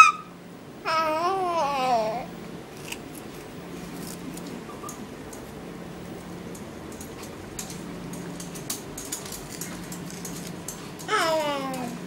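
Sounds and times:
toddler babbling: 0.8s - 2.3s, 11.1s - 12.0s.

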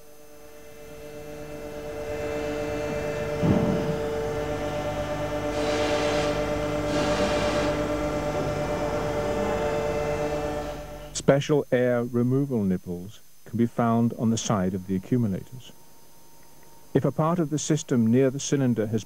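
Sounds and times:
electric pump humming: 0.0s - 11.5s, 13.7s - 19.0s.

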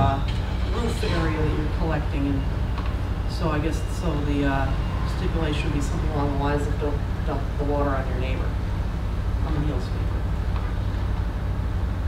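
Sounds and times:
air conditioner rumble: 0.0s - 12.0s.

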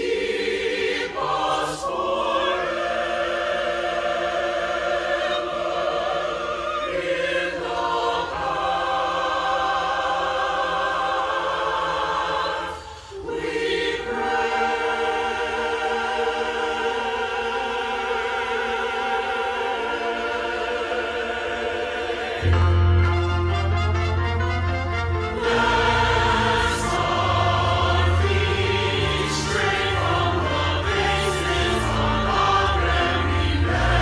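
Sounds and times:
choir singing in harmony: 0.0s - 34.0s.

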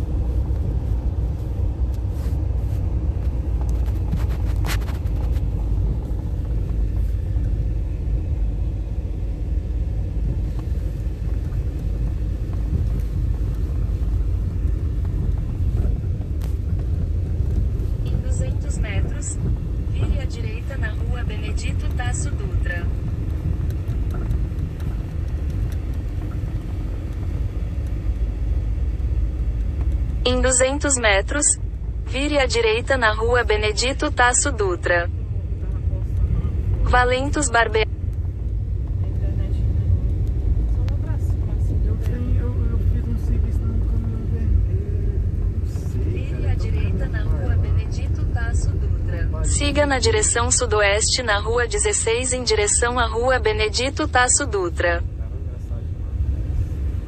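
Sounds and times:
car driving low rumble: 0.0s - 57.0s.

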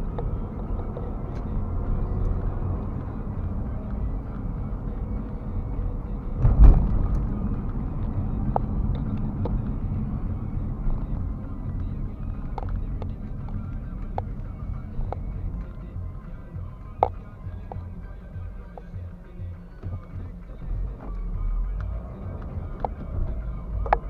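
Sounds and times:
car engine and tyres rumbling: 0.0s - 24.0s
thump: 6.4s - 7.3s.

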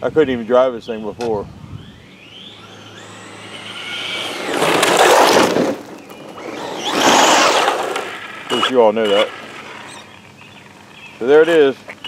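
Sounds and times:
electric motor whine: 1.0s - 12.0s
tyres sliding on gravel: 2.5s - 12.0s.

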